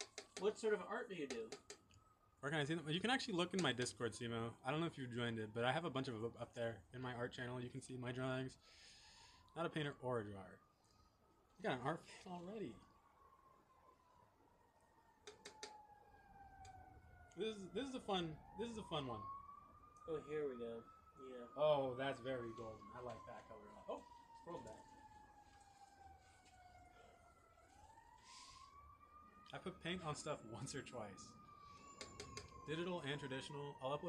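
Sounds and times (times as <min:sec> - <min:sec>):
faint siren wailing: 0:00.0 - 0:34.0.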